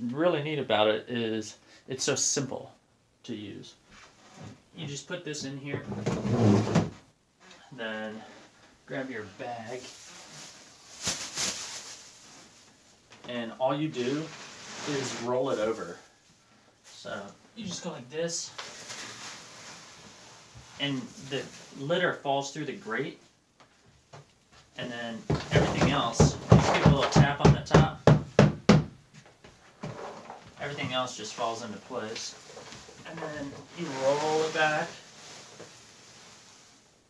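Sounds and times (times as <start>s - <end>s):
plastic bag rustling: 9.3s - 12.8s, 18.6s - 21.8s, 30.6s - 36.8s.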